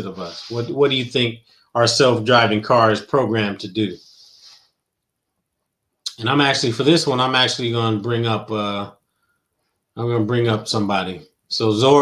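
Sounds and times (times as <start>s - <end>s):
faint hiss: 0.0s - 4.8s.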